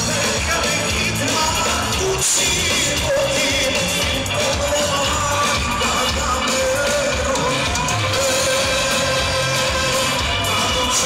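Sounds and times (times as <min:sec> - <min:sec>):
live band pop-folk music: 0:00.0 - 0:11.0
man singing long notes: 0:00.0 - 0:11.0.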